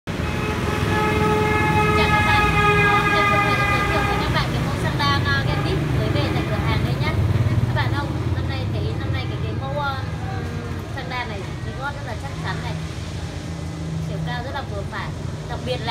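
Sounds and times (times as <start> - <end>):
street traffic rumbling: 0.0 - 15.9.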